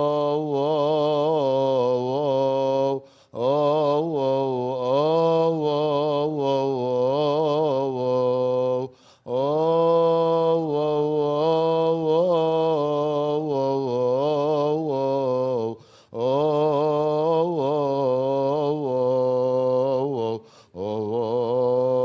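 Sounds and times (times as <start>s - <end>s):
man chanting a hymn: 0.0s - 22.0s.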